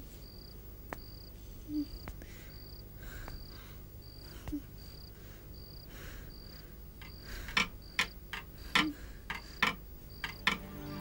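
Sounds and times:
cricket chirping: 0.2s - 11.0s
sharp irregular clicks: 7.0s - 10.7s.

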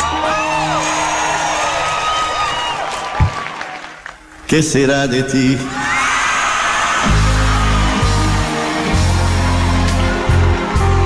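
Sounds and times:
crowd cheering and whistling: 0.0s - 4.4s, 5.7s - 11.0s.

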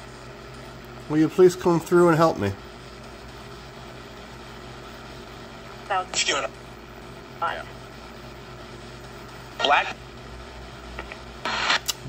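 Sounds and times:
radio static hiss: 5.8s - 6.6s, 7.2s - 12.0s.

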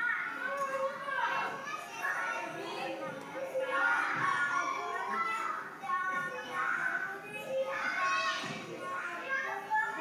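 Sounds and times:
children playing: 0.0s - 10.0s
children talking: 0.0s - 10.0s.

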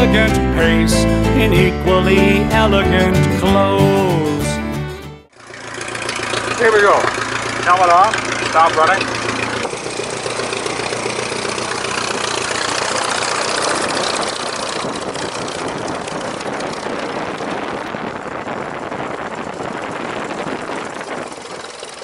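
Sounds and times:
propeller plane engine idling: 5.3s - 22.0s
rush of propeller wash: 5.4s - 22.0s.

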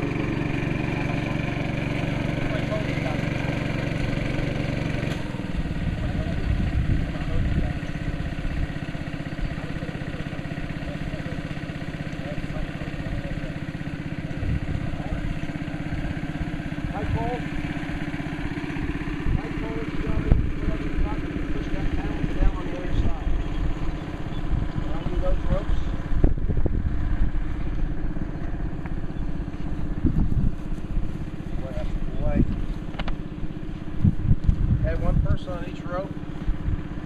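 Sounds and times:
small engine running: 0.0s - 37.0s.

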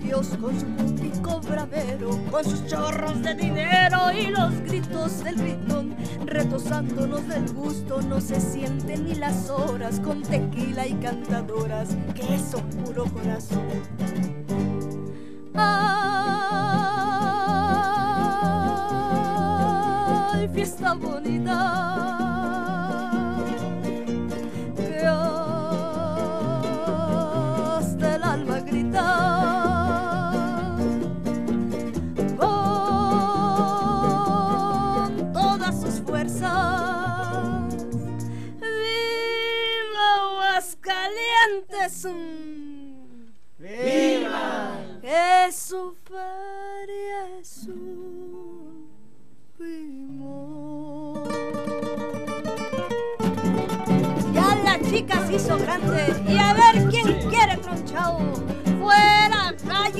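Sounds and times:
acoustic guitars strumming: 0.0s - 42.0s, 51.1s - 59.9s
person singing long notes: 15.6s - 23.6s.

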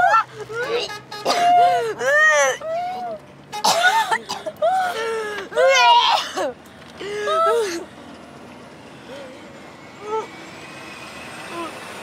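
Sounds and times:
bus engine and road noise: 0.0s - 12.0s.

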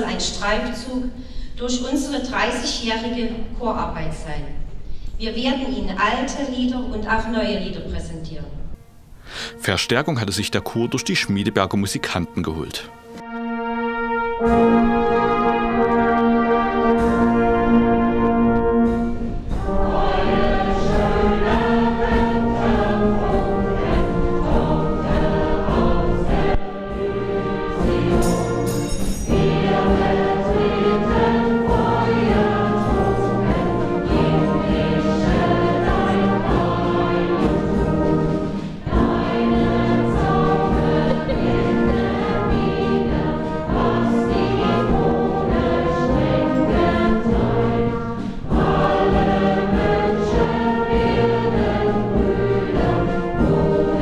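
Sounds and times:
brass band playing: 8.8s - 54.0s
choir singing: 9.6s - 54.0s.

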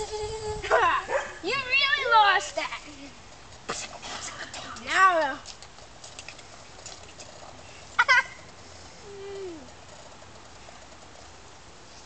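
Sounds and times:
child squealing and whining: 0.0s - 0.9s.

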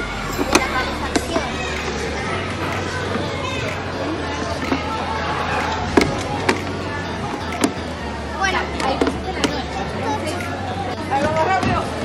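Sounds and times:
steady low hum: 0.0s - 5.5s.

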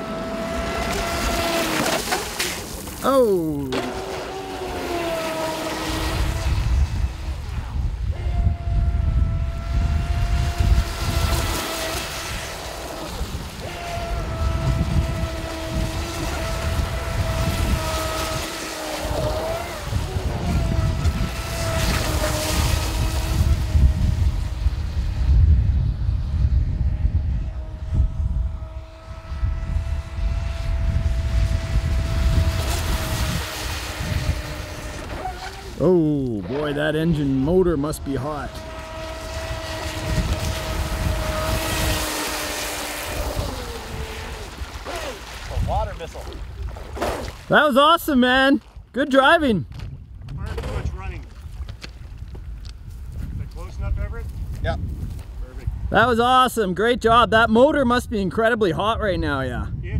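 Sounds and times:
rc boat motor whine: 0.0s - 45.6s.

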